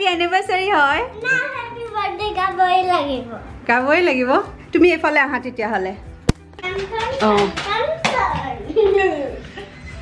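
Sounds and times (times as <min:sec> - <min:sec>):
hand clap: 0:06.3 - 0:08.6.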